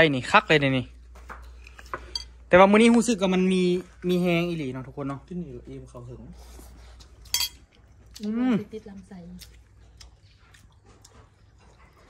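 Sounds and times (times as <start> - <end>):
metal spoon clinking on a dish: 2.1 - 2.4, 7.3 - 7.6.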